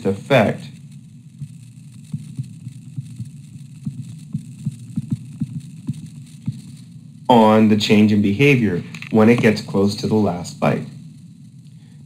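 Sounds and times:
steady low hum: 0.0 - 12.0
stylus tapping on touchscreen: 2.0 - 6.7.

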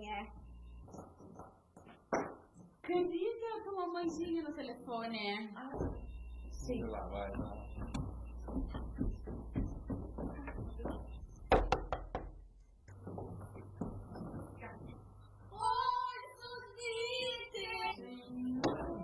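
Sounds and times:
knocks on wooden door: 7.3 - 12.4.

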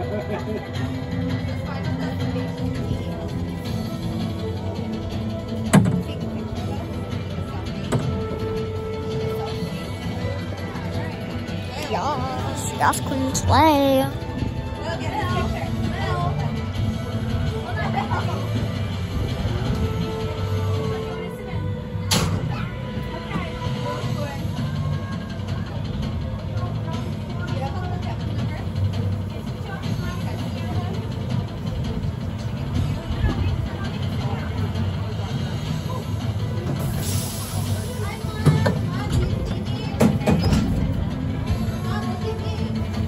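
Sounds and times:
people talking: 11.7 - 14.2.

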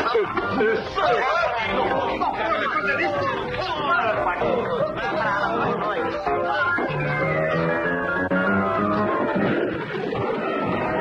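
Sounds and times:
voices talking and shouting: 0.0 - 11.0.

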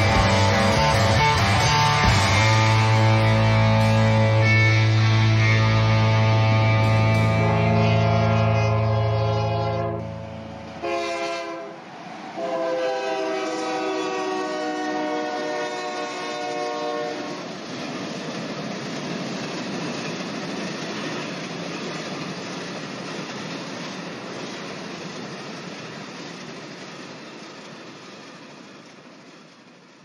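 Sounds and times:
horn-like chord: 0.0 - 11.8.

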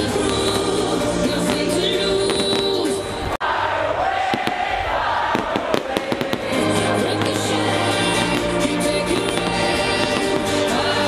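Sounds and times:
fireworks banging: 0.0 - 3.4, 4.2 - 11.0
electronic dance music: 6.3 - 11.0.

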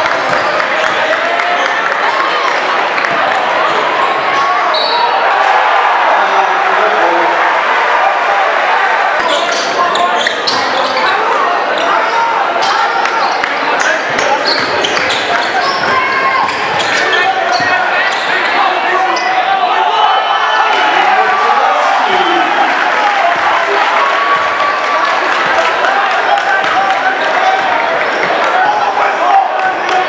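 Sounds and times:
crowd chatter echoing: 0.0 - 30.0
sneakers squeaking: 0.1 - 2.3, 3.0 - 5.2, 9.2 - 19.6, 27.1 - 28.4.

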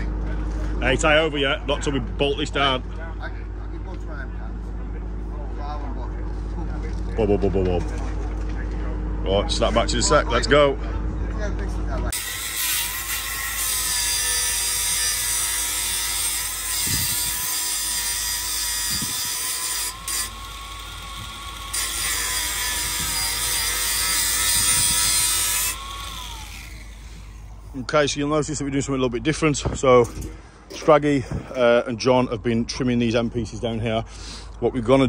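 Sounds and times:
angle grinder cutting steel tube: 12.1 - 27.5.

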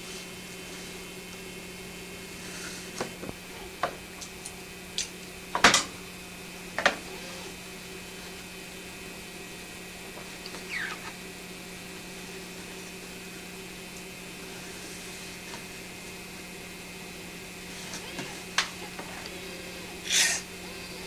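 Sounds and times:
low electrical hum: 0.0 - 21.0
short falling squeak: 10.6 - 11.1.

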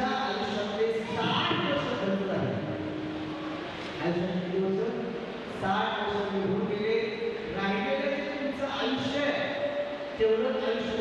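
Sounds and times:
man's voice over microphone: 0.0 - 3.0, 3.8 - 11.0.

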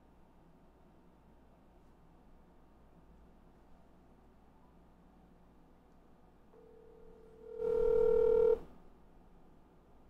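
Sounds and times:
telephone ringback tone: 6.6 - 8.7.

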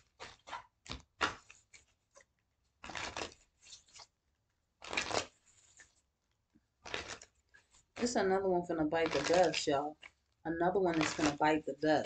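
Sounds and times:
cards being shuffled: 0.0 - 4.2, 4.8 - 6.1, 6.8 - 8.2, 9.0 - 10.2, 10.9 - 11.4.

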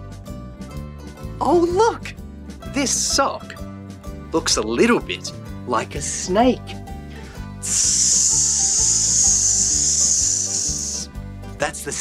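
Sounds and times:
light background music: 0.0 - 12.0
person hissing like a snake: 7.6 - 11.1.

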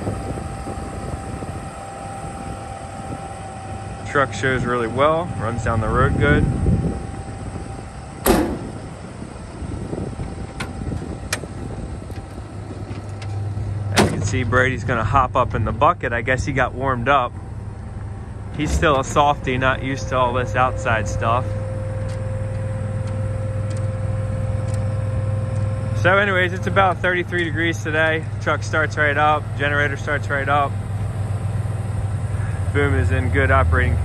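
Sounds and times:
truck and generator drone: 0.0 - 34.0
loud sharp bang: 8.2 - 8.9.

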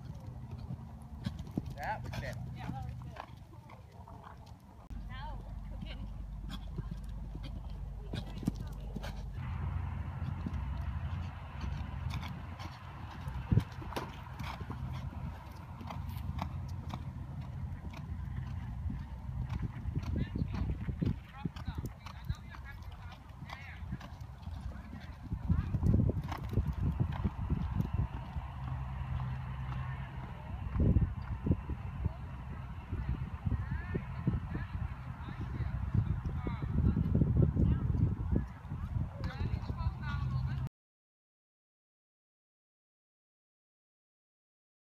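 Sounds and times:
hoofbeats on sand: 0.0 - 32.4.

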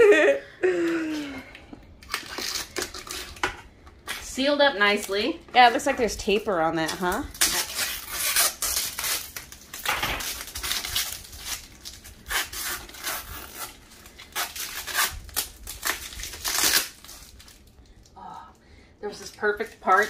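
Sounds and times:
plastic crackling and tearing: 1.9 - 18.1, 19.2 - 20.0.

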